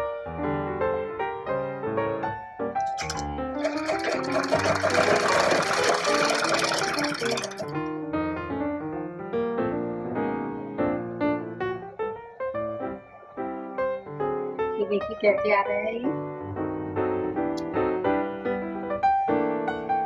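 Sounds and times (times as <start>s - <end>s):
piano music: 0.0s - 15.4s
sewing machine stitching: 2.8s - 7.8s.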